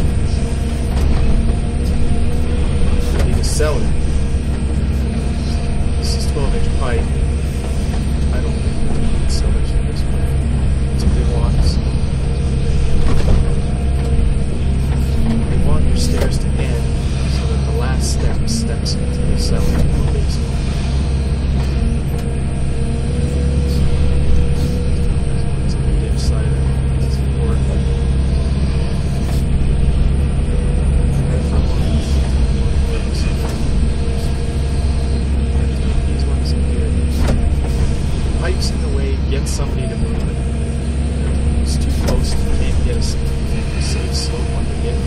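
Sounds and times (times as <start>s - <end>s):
excavator diesel engine under load: 0.0s - 45.0s
hydraulic whine: 0.0s - 45.0s.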